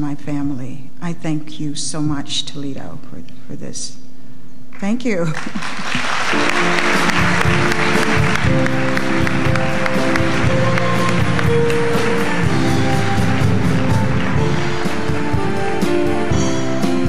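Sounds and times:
audience applause: 5.3s - 16.3s
live band playing chords: 6.0s - 17.0s.

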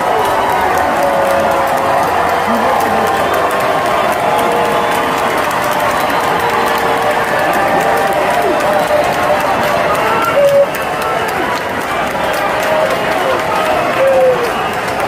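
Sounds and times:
crowd chatter: 0.0s - 15.0s
loud call: 0.0s - 15.0s.

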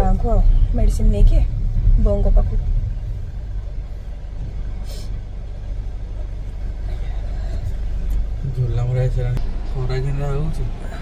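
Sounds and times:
car engine rumble inside cabin: 0.0s - 11.0s.

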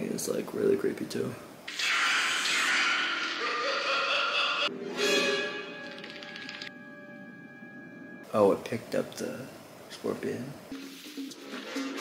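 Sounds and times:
eerie sustained film score tones: 1.7s - 8.4s
distorted man's laughter: 3.2s - 4.7s.

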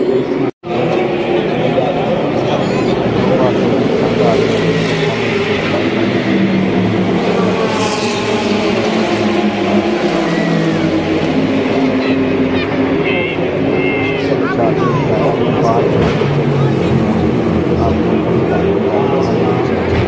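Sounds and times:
race car engines passing: 0.0s - 20.0s
spectators' voices: 0.0s - 20.0s.

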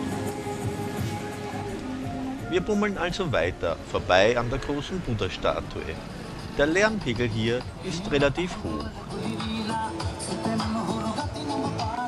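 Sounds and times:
music from loudspeaker: 6.9s - 12.0s.

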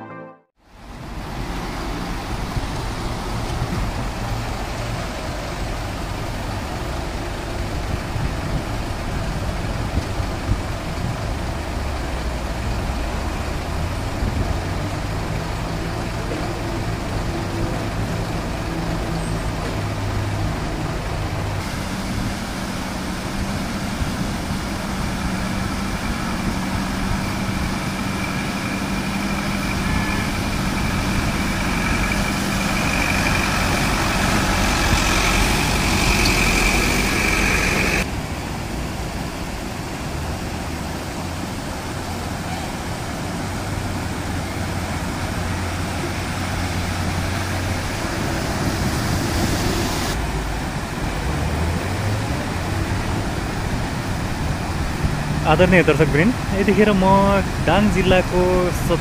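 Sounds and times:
rushing river: 0.0s - 59.0s
bus engine under load: 0.6s - 59.0s
truck engine idling: 18.0s - 38.1s.

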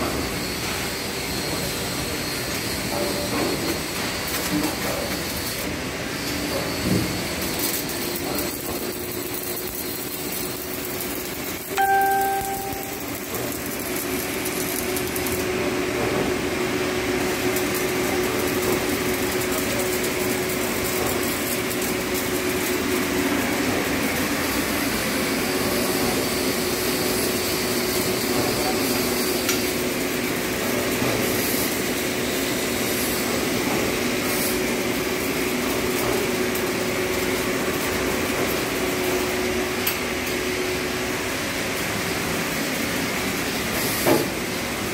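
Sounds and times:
arc welding: 0.1s - 44.9s
short loud beep: 11.7s - 13.3s.

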